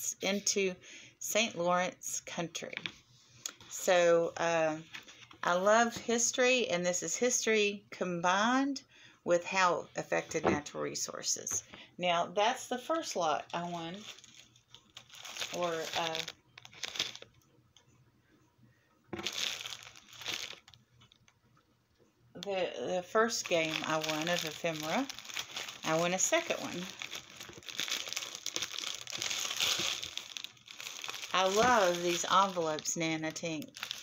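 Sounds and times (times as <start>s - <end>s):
envelope crinkling: 13.7s - 17.4s, 19.2s - 21.3s, 23.3s - 34.0s.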